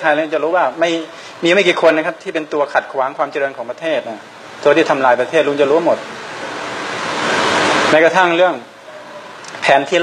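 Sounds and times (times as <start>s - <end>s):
steady rushing noise: 3.6s - 10.0s.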